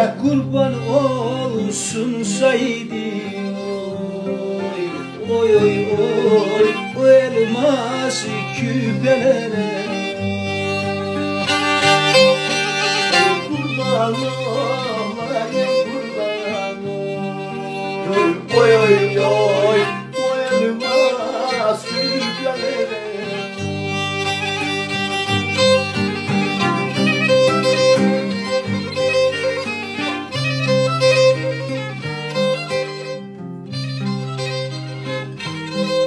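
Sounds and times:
acoustic guitar chords: 0.0s - 36.0s
bowed fiddle melody: 0.0s - 36.0s.

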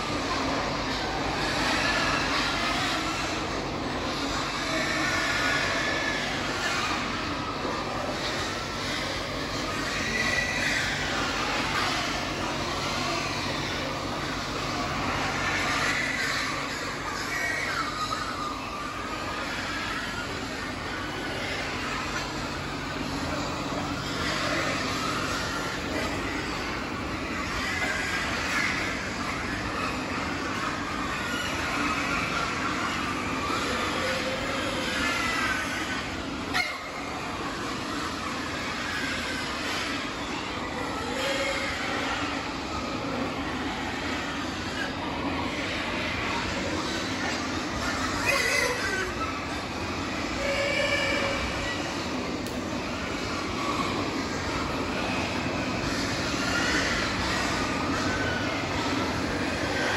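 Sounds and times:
pigs squealing: 0.0s - 59.9s
ventilation fans running: 0.0s - 59.9s.

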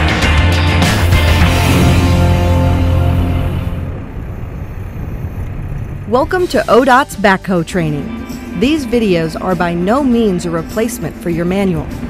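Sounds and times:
diesel engine rumbling: 0.8s - 12.0s.

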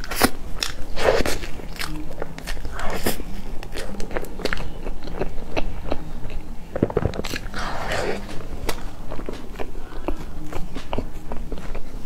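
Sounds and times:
wet chewing with mouth clicks: 0.0s - 12.0s.

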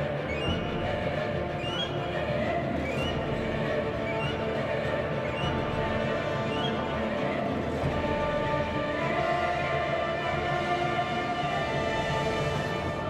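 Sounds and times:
choir singing: 0.0s - 13.0s.

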